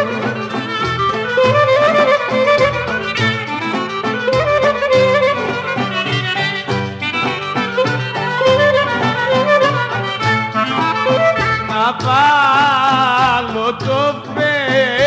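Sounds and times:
clarinet melody: 0:00.0 - 0:11.8
orchestral rhythm accompaniment: 0:00.0 - 0:15.0
person singing: 0:11.6 - 0:15.0.

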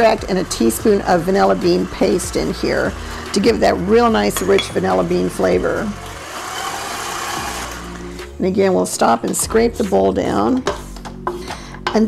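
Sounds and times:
electric stand mixer running: 0:00.0 - 0:08.2.

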